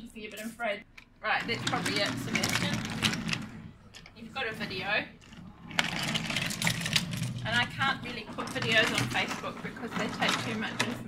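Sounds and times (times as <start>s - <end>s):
toy train wheels rattling on track: 5.8s - 11.0s.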